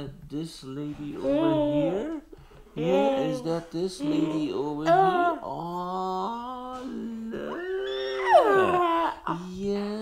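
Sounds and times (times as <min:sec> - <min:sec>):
people vocalizing sing-song note: 0:01.0 - 0:02.2, 0:02.8 - 0:09.7
high squeal sliding down: 0:07.6 - 0:08.8.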